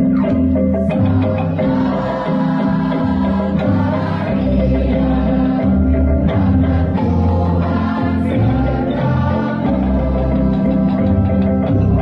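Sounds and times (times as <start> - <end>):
choir singing held chords: 0.0 - 12.0.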